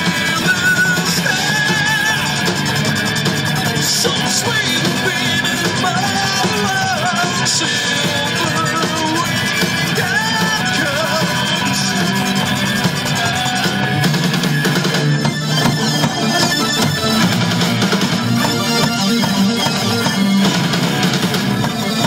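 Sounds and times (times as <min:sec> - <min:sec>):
live metal band playing: 0:00.0 - 0:22.0.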